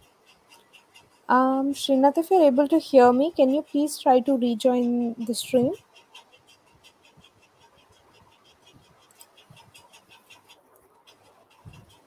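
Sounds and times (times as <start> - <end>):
faint even ticking: 0.0 - 12.0.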